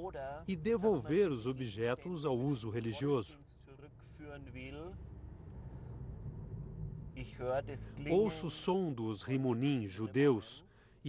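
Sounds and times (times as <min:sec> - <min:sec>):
man talking: 0:00.0 - 0:05.0, 0:07.2 - 0:10.6
road and engine noise in car: 0:00.1 - 0:10.6.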